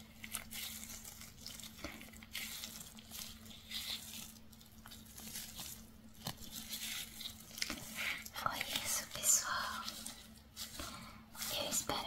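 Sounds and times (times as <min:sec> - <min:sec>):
woman whispering: 0:08.2 - 0:10.0, 0:11.4 - 0:12.0.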